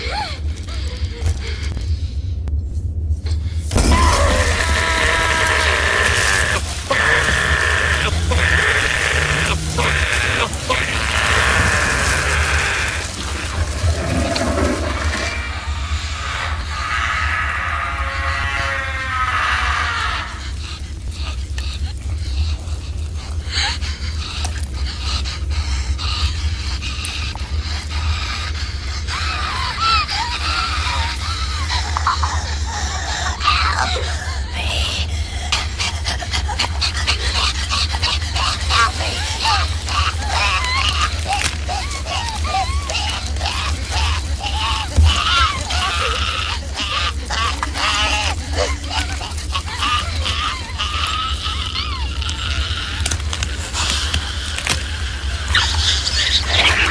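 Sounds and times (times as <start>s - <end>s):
low hum: 0.0s - 56.9s
large fire rushing and rumbling: 3.5s - 16.9s
raspy animal-like snarling: 4.2s - 16.8s, 35.1s - 56.9s.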